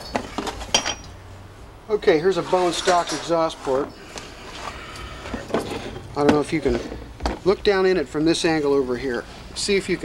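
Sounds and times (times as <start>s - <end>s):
metal parts clinking on workbench: 0.0s - 1.1s.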